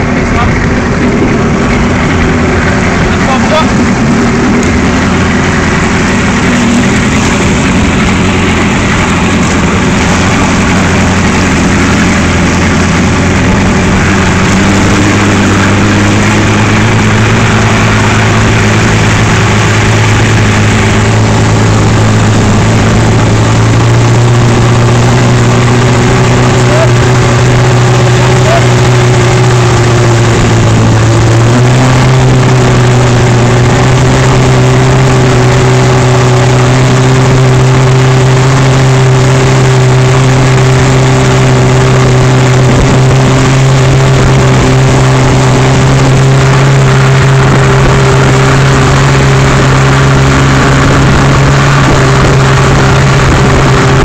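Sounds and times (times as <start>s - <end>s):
outboard motor running: 0.0s - 54.0s
rushing water: 0.0s - 54.0s
wind: 0.0s - 54.0s.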